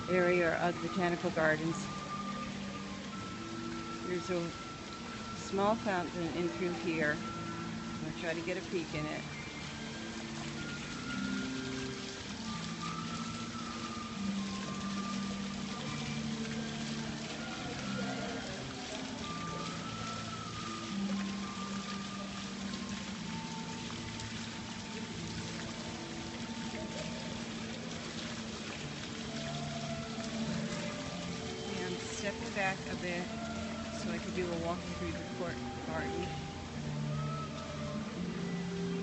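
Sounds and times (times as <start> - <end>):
fountain water splashing: 0.0 - 39.0
soft background music: 0.0 - 39.0.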